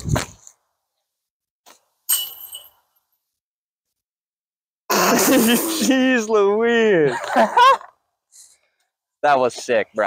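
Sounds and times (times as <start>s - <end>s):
disc hitting metal chains: 2.1s - 2.8s.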